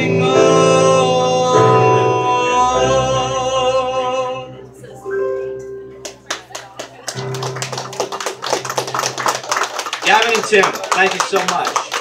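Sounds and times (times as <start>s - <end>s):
audience applause: 6.0s - 12.0s.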